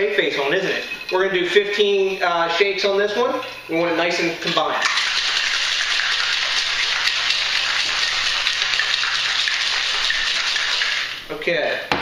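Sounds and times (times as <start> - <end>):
ice rattling in cocktail shaker: 0.0 - 11.2.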